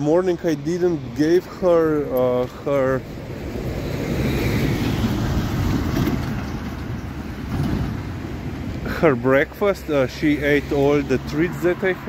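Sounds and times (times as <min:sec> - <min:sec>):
vehicle passing: 0:00.5 - 0:12.0.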